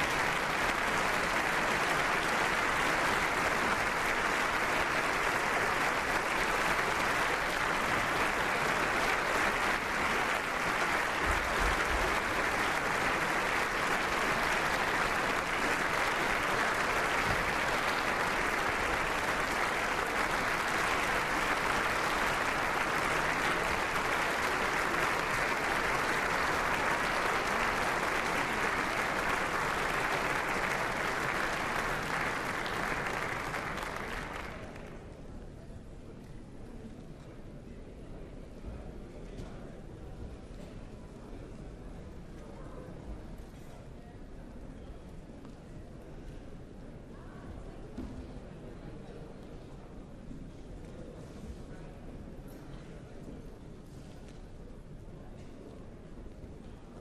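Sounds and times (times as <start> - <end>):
large crowd applauding: 0.0 - 35.2.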